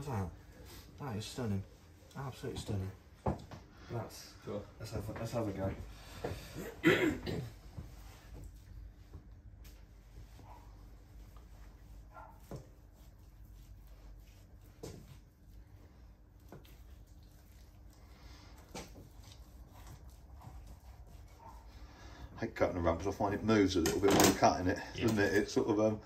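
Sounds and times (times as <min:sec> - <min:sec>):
person coughing: 0:06.5 - 0:07.6.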